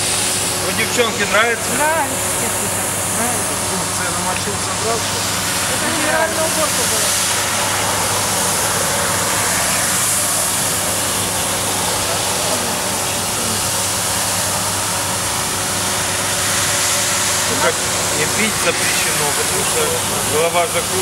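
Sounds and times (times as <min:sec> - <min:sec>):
floor scrubber hissing: 0:00.0 - 0:21.0
low machine hum: 0:00.0 - 0:21.0.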